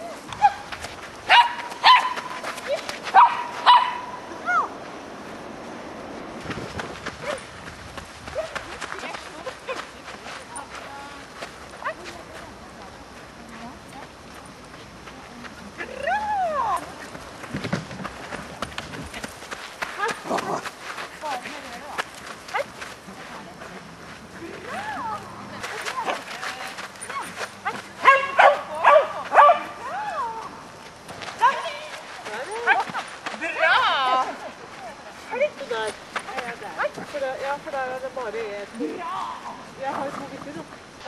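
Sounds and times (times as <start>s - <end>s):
dog barking: 1.3s - 2.4s, 3.1s - 4.2s, 27.6s - 29.8s
people's voices: 8.2s - 17.5s, 18.2s - 41.0s.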